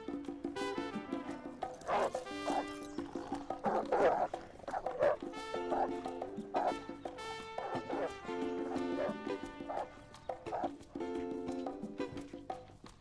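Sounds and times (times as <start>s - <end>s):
background music with horn notes: 0.0s - 12.8s
dog barking: 1.8s - 2.7s, 3.6s - 6.8s, 7.6s - 9.9s, 10.5s - 10.7s.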